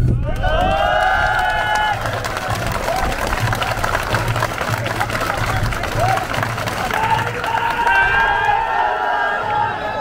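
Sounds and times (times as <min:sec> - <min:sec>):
crowd clapping: 0:00.2 - 0:09.6.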